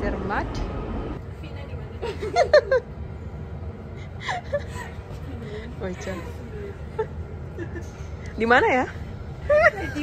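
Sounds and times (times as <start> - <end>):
train carriage hum: 0.0 - 10.0
woman laughing: 2.0 - 3.0, 4.1 - 8.0, 9.4 - 10.0.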